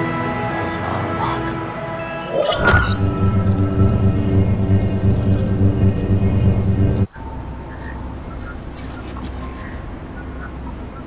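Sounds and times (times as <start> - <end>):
loud low electronic drone: 2.2 - 8.3
quiet low rumble: 2.6 - 10.9.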